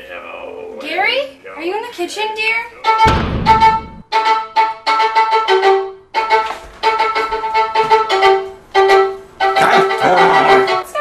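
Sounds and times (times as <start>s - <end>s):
violin playing short notes: 2.8s - 11.0s.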